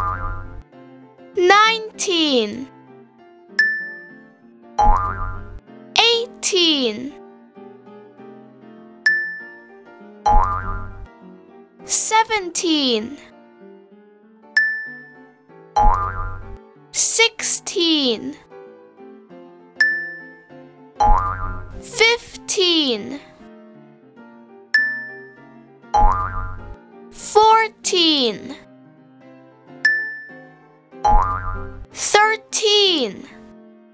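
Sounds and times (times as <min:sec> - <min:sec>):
cartoon boing: 0:00.0 - 0:00.5, 0:04.8 - 0:05.5, 0:10.3 - 0:11.0, 0:15.8 - 0:16.5, 0:21.0 - 0:21.6, 0:26.0 - 0:26.7, 0:31.1 - 0:31.8
soft children's music: 0:00.0 - 0:33.9.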